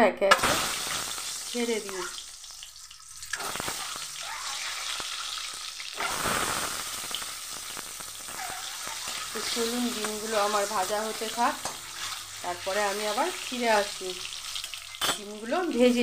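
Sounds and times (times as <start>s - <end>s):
eggs sizzling in hot oil: 0.3s - 16.0s.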